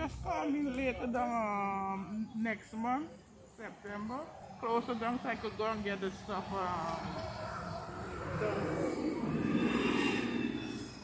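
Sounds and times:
bus diesel engine passing: 0:03.6 - 0:11.0
high whine: 0:07.3 - 0:11.0.

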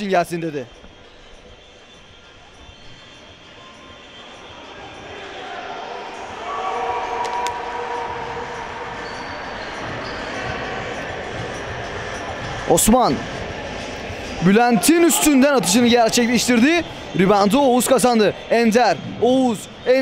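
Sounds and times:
players' voices: 0:03.7 - 0:20.0.

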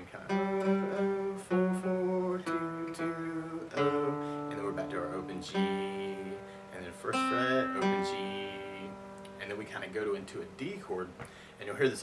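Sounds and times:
acoustic guitar playing: 0:00.0 - 0:10.9.

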